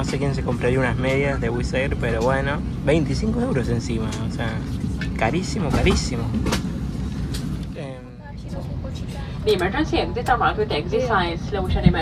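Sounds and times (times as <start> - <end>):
aircraft cabin rumble: 0.0 - 12.0.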